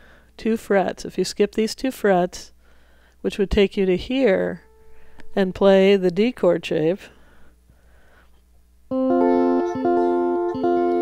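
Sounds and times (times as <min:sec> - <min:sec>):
electric guitar chord ringing: 0:04.6 - 0:05.2, 0:08.9 - 0:11.0.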